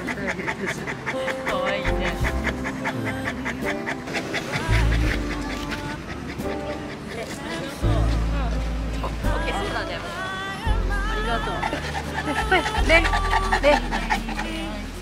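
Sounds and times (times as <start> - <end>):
dog panting: 0.0 - 9.8, 11.2 - 15.0
background music: 0.0 - 15.0.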